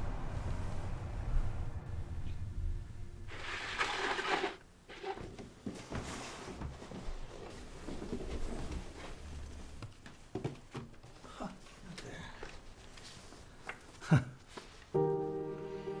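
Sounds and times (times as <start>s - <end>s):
cardboard box scraping on wood floor: 3.3s - 7.2s.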